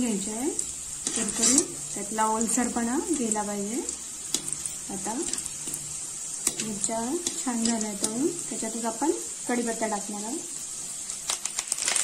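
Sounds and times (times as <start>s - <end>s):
chillies sizzling in hot oil: 0.0s - 12.0s
metal spoon stirring: 0.2s - 8.6s.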